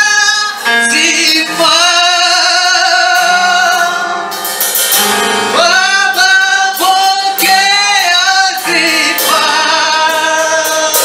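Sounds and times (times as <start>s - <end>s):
lead singer on microphone: 0.0s - 4.6s, 5.3s - 11.0s
choir voices singing gospel: 0.0s - 11.0s.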